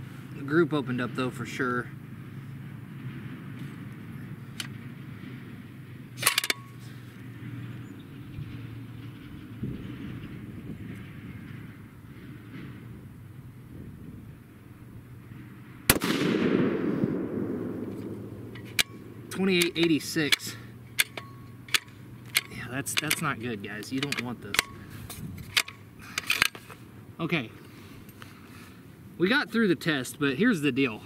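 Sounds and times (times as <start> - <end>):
clatter of clicks: 6.2 - 6.8, 19.6 - 26.8
rifle shot echoing: 15.3 - 19.9.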